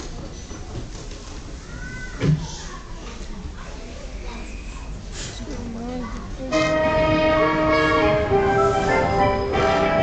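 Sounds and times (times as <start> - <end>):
audience murmur: 0.0 - 10.0.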